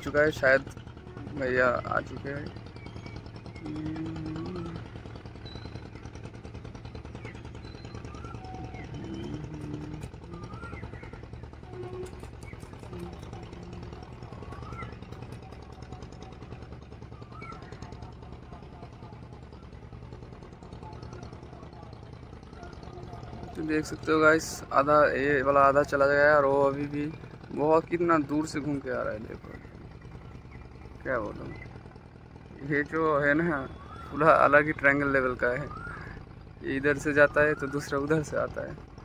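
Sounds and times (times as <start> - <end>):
boat diesel engine chugging: 0.0 - 39.0.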